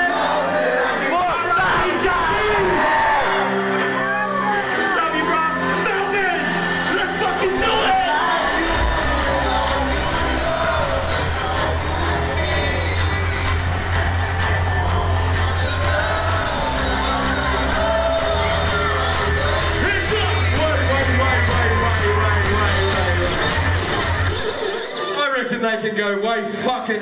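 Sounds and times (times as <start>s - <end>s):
voices over music: 0.0s - 24.6s
loud hip-hop music: 0.0s - 27.0s
heavy bass beat: 7.2s - 24.4s.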